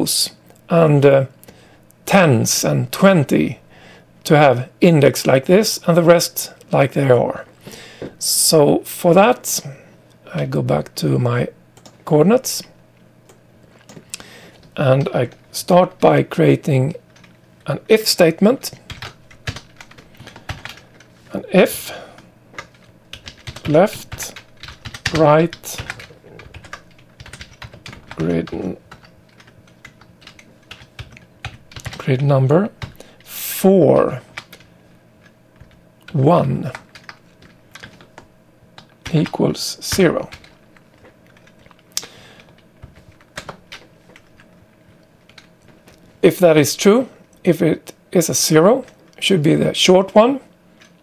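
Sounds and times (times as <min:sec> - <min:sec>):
computer keyboard keystrokes: 0:11.8 - 0:12.0, 0:18.9 - 0:21.0, 0:22.6 - 0:32.0, 0:34.3 - 0:34.7, 0:35.6 - 0:39.3, 0:39.9 - 0:44.5, 0:45.3 - 0:46.0.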